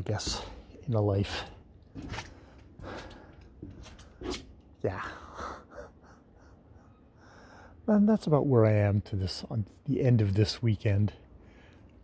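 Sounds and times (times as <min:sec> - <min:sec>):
man speaking: 0:00.0 - 0:01.6, 0:04.8 - 0:05.5, 0:07.9 - 0:11.2
man breathing softly: 0:02.2 - 0:03.6, 0:05.3 - 0:07.8, 0:11.3 - 0:12.0.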